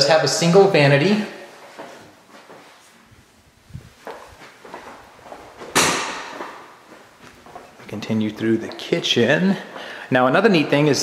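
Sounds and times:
light footsteps: 1.5 - 11.0
loud ringing bang: 5.8 - 6.4.

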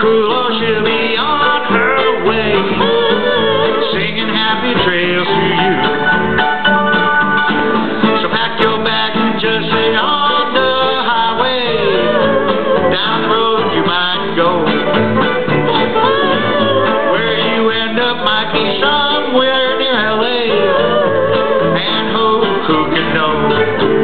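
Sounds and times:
fiddle: 0.0 - 24.0
plucked strings: 0.0 - 24.0
upright bass: 0.0 - 24.0.

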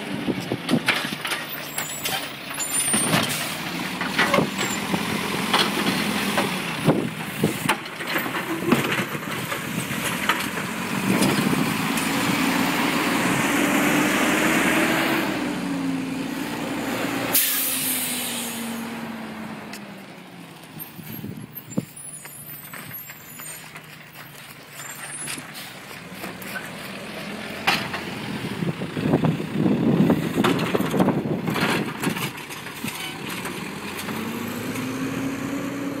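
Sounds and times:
garbage truck diesel engine passing: 1.4 - 32.0, 33.1 - 36.0
air brake hiss: 17.3 - 18.8.

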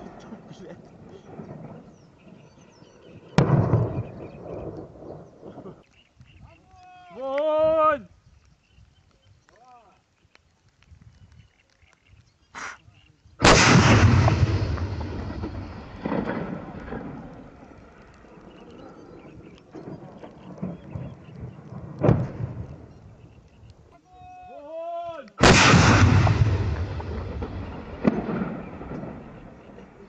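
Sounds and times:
artillery blast with rolling echo: 0.0 - 2.4, 3.2 - 5.8, 13.4 - 22.9, 25.4 - 30.0.

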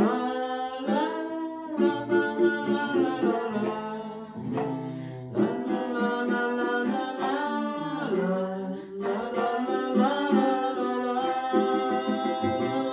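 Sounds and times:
acoustic guitar: 0.0 - 12.9
strummed ukulele: 0.0 - 12.9
woman singing folk ballad: 0.0 - 12.9.

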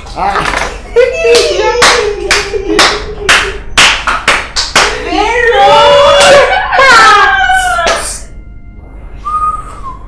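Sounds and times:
hands clapping: 1.3 - 5.0, 6.1 - 6.5, 7.8 - 8.2.

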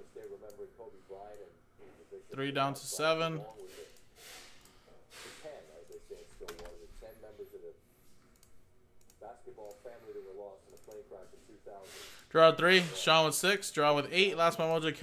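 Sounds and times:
keyboard and mouse clicking: 8.3 - 9.9, 10.7 - 11.0.

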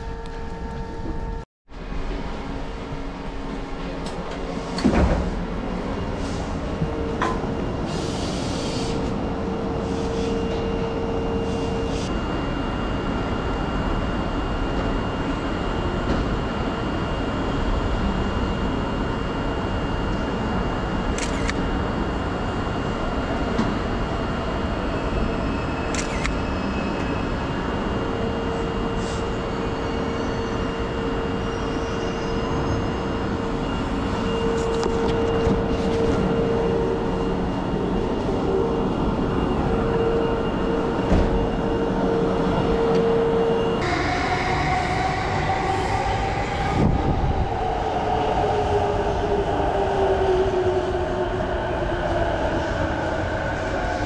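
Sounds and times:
steady platform hum: 33.0 - 54.0.

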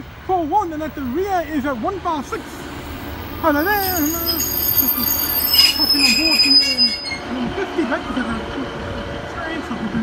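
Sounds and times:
high steady squeal: 2.8 - 7.3.

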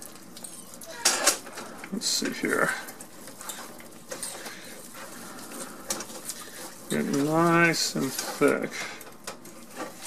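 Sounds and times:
whisk scraping thick mixture: 2.4 - 8.8.

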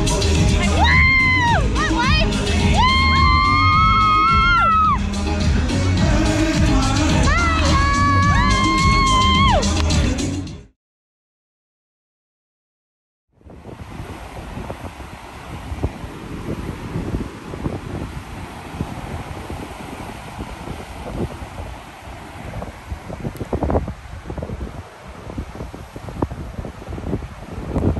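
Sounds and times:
wind gusting on microphone: 0.0 - 10.2, 13.4 - 27.9
rush of sea water: 0.0 - 10.4, 13.3 - 27.9.

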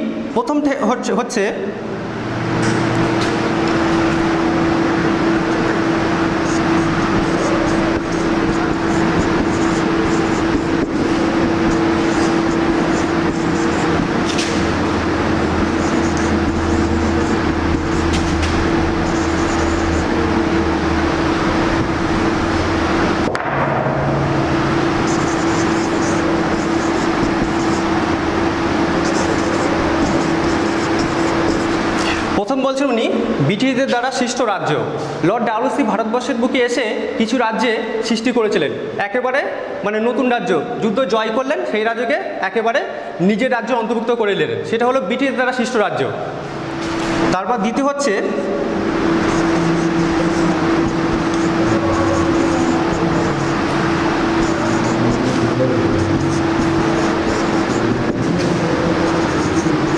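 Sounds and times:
loud noisy drone with hum: 0.0 - 59.9.

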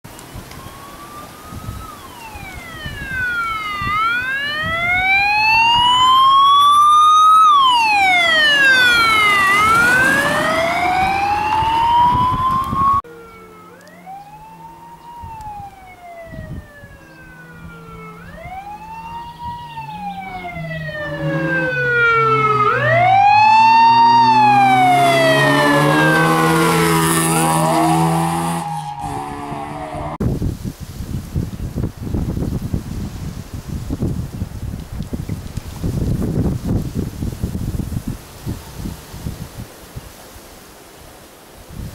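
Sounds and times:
rally car engine revving: 8.7 - 11.9, 23.6 - 30.2.

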